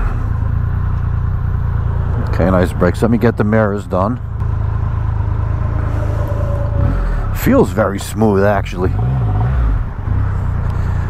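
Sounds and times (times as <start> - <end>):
motorcycle engine idling: 0.0 - 8.8, 9.8 - 11.0.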